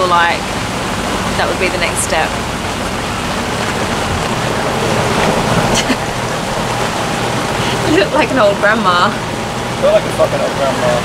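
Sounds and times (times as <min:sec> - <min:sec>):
rain on canvas: 0:00.0 - 0:11.0.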